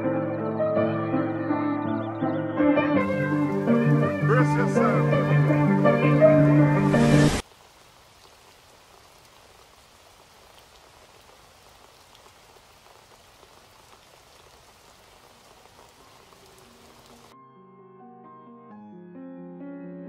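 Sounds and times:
faint hiss with patter: 0:06.8 - 0:17.3.

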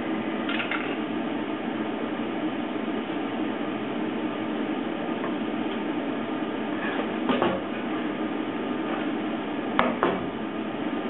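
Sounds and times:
shop equipment humming: 0:00.0 - 0:11.0.

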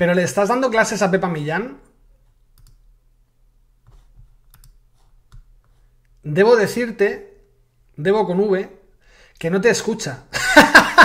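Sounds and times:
computer mouse clicks: 0:02.2 - 0:03.0, 0:03.8 - 0:06.2.

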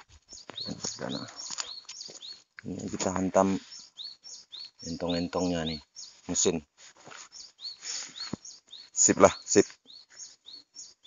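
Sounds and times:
small bird chirping: 0:00.0 - 0:11.0
rustling: 0:06.0 - 0:08.4.

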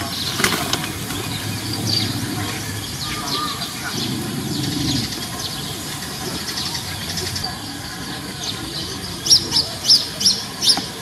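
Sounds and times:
murmur of distant voices: 0:00.0 - 0:11.0
small birds chirping: 0:00.0 - 0:11.0.

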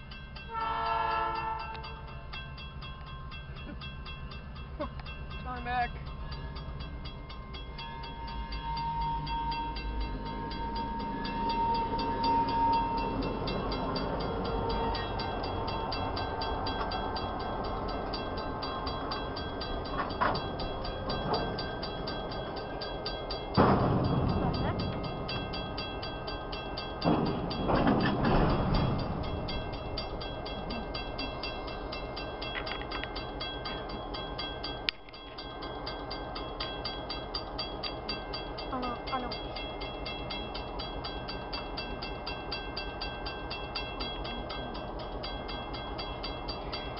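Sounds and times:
locomotive engines rumbling: 0:00.0 - 0:46.9.

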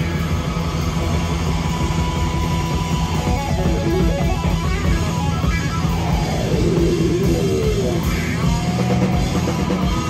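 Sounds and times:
live heavy rock music: 0:00.0 - 0:10.0.

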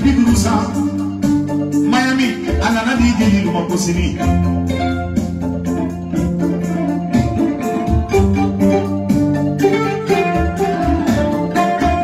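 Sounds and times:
plucked kora strings: 0:00.0 - 0:12.0.

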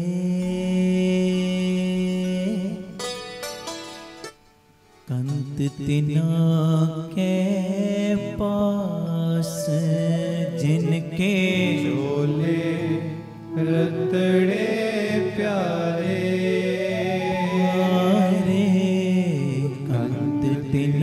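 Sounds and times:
men singing devotional song: 0:00.0 - 0:02.9, 0:05.1 - 0:21.0
harmonium held notes: 0:10.9 - 0:18.7.

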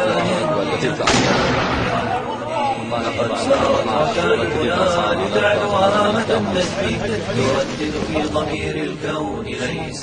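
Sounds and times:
mortar firing blast: 0:01.1 - 0:02.2.

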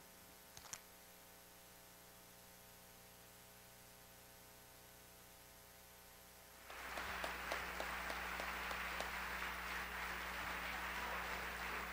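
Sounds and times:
low electrical hum: 0:00.0 - 0:11.9
audience applauding: 0:06.6 - 0:11.9.

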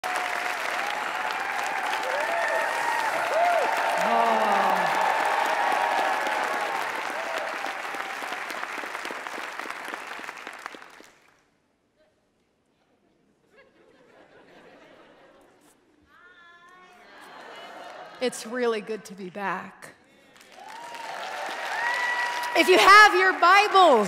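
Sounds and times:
cheering voices: 0:00.0 - 0:09.8, 0:20.5 - 0:24.0
audience applauding: 0:00.0 - 0:11.4, 0:20.2 - 0:24.0.

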